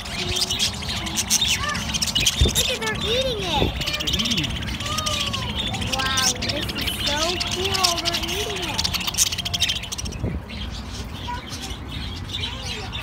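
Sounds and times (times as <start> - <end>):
budgerigars chattering: 0.0 - 13.0.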